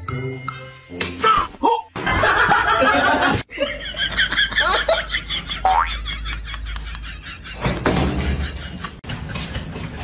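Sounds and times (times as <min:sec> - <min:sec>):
people laughing: 0:02.0 - 0:09.6.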